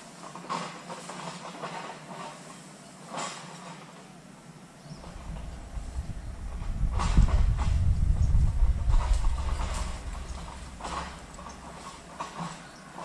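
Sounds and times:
heavy low rumble: 0:05.0 - 0:12.5.

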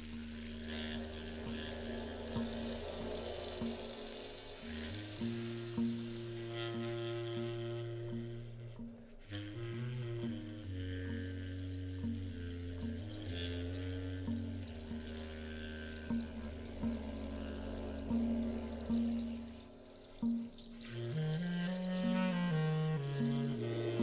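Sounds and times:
deep saxophone line: 0:00.0 - 0:24.0
low sustained drone: 0:00.0 - 0:24.0
percussion: 0:00.0 - 0:24.0.

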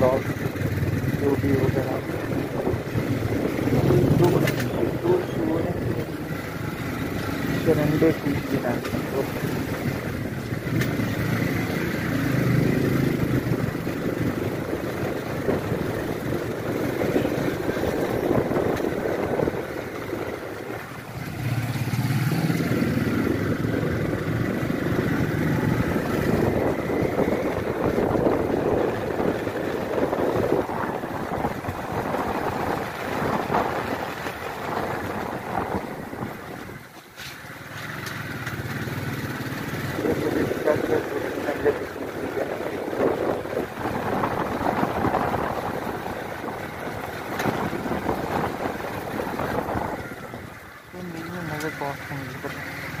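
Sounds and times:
small motorcycle engine running: 0:00.0 - 0:36.3, 0:37.6 - 0:53.0.

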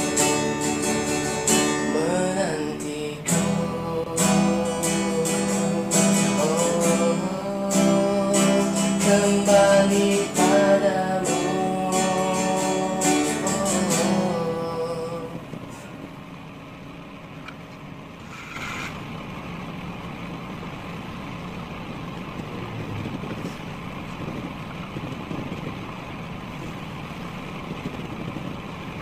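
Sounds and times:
low outdoor background rumble: 0:00.0 - 0:29.0.

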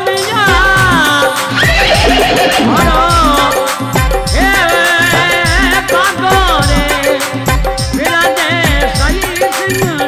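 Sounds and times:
man singing: 0:00.0 - 0:10.0
hand drum strokes: 0:00.8 - 0:07.0.

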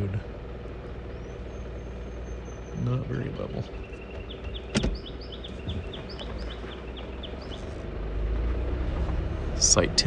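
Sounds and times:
songbird chirping: 0:00.0 - 0:10.0
vehicle rolling on dirt road: 0:00.0 - 0:10.0.

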